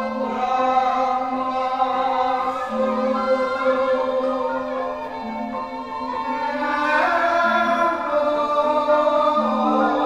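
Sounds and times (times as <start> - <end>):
chorus singing long held notes: 0.0 - 10.0
gamelan music: 0.0 - 10.0.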